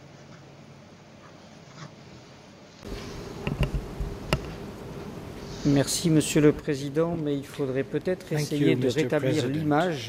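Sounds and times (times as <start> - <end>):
microphone electrical buzz: 2.8 - 8.4
microphone handling clicks and knocks: 3.4 - 4.6.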